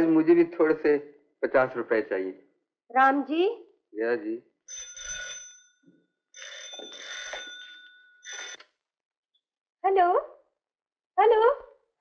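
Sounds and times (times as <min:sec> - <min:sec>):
telephone bell ringing: 0:04.7 - 0:08.7.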